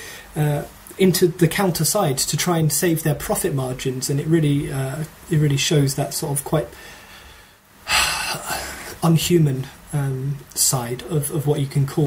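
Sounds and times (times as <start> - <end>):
man sighing: 6.8 - 9.0.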